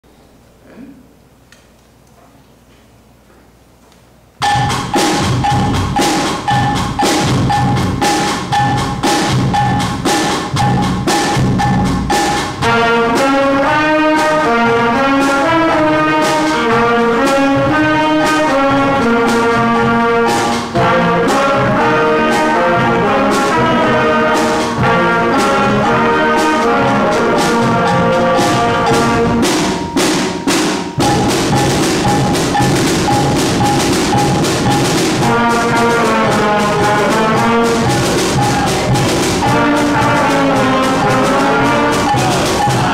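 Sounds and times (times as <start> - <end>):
drums: 4.4 - 42.9
brass and woodwinds playing tune: 10.9 - 42.9.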